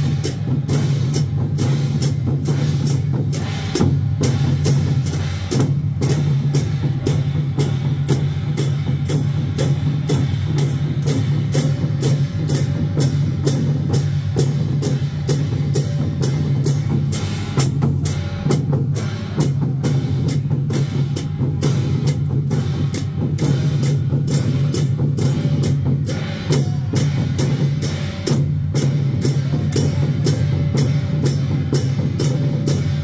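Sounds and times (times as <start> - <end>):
drum beat: 0.0 - 33.0
hand cymbals crashing: 0.0 - 33.0.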